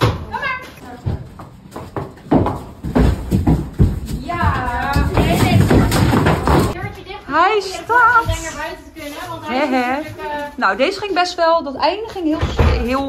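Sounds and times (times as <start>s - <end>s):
people's voices: 4.1s - 13.0s.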